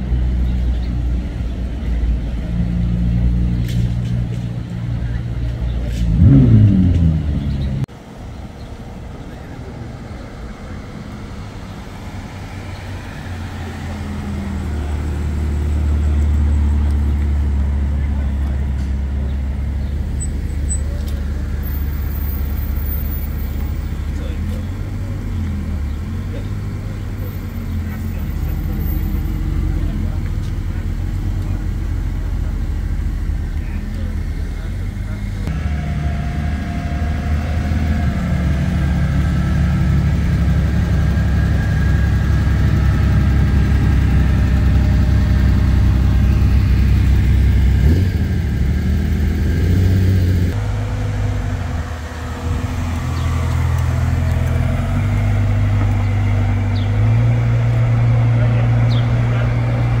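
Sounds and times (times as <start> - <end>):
sports car engines running: 0.0 - 60.0.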